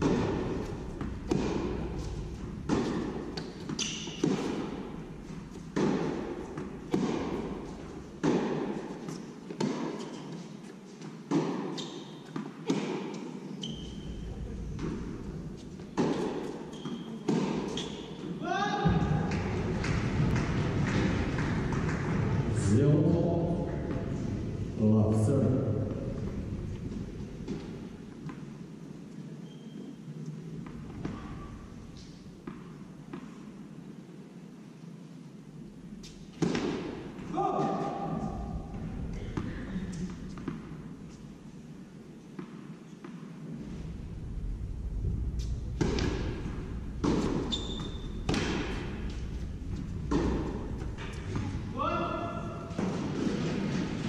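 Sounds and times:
tennis racket strikes: 0.0s - 5.0s, 5.6s - 10.3s, 15.8s - 18.1s, 45.4s - 51.6s
tennis ball bouncing on court: 0.0s - 10.2s, 11.0s - 18.1s, 30.6s - 33.4s, 36.3s - 37.0s, 37.6s - 41.2s, 42.3s - 43.3s, 45.4s - 51.6s.

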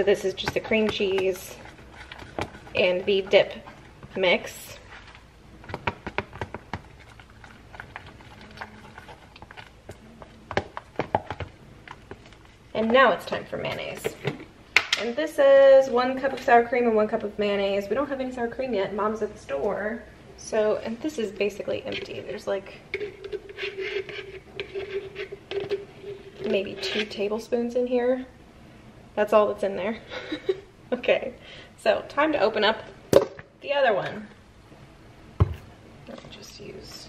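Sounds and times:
utensil scraping plastic container: 0.4s - 5.2s, 21.5s - 27.3s
spoon scraping inside a jar: 22.9s - 27.3s.

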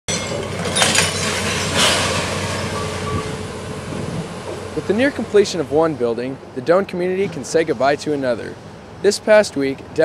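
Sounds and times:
excavator engine rumbling: 0.1s - 10.0s.

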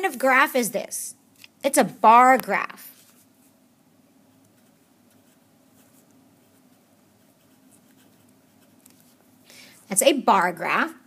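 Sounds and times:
marker writing on paper: 4.3s - 9.2s.

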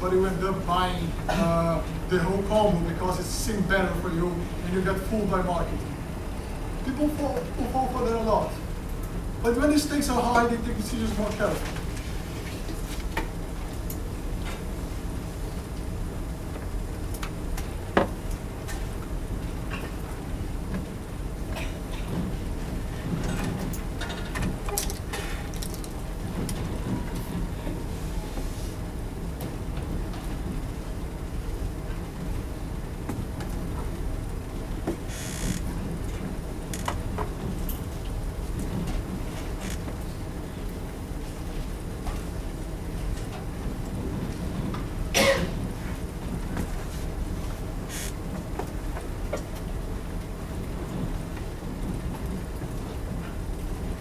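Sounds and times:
low rumble of room noise: 0.0s - 54.0s.

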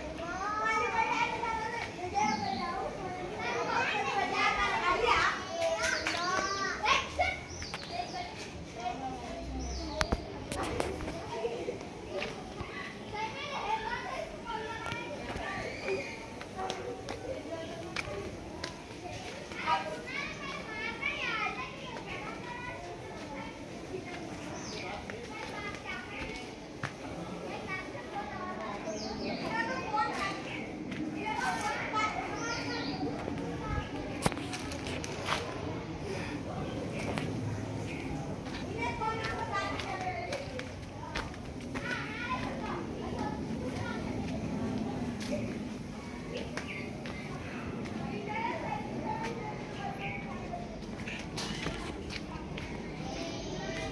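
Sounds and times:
children chattering and calling: 0.0s - 53.9s.

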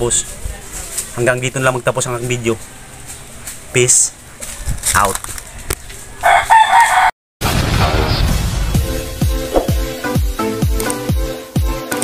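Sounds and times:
rooster crowing: 5.4s - 7.2s
electronic outro music: 7.4s - 12.0s.

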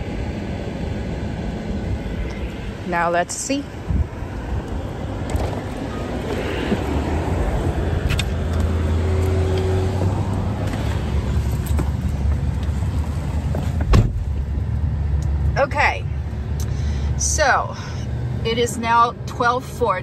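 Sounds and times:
sharp thump: 13.8s - 14.2s.

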